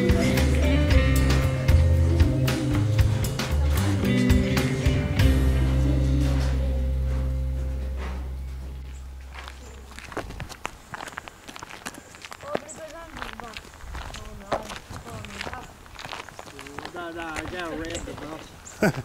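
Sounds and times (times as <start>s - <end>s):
low music chord: 0.0s - 9.4s
footsteps on asphalt: 6.3s - 19.0s.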